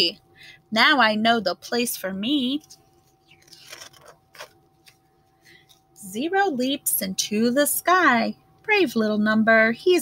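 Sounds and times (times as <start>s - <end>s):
paper pages rustling: 2.6s - 5.8s.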